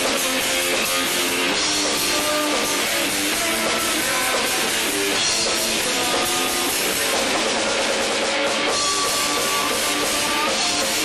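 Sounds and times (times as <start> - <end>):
drum kit: 0.0 - 11.0
electric guitar: 0.0 - 11.0
live rock band playing: 0.0 - 11.0.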